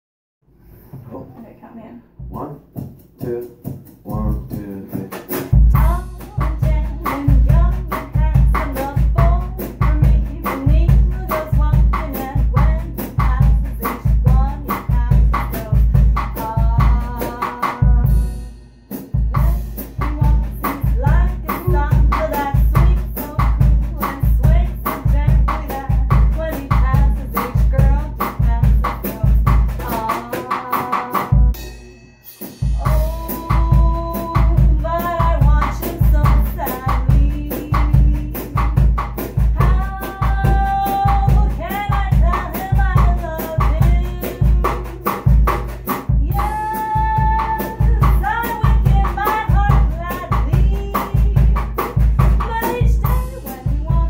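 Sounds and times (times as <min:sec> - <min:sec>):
drum kit groove: 0:02.1 - 0:54.0
woman singing: 0:05.7 - 0:18.5, 0:19.3 - 0:31.6, 0:32.8 - 0:54.0.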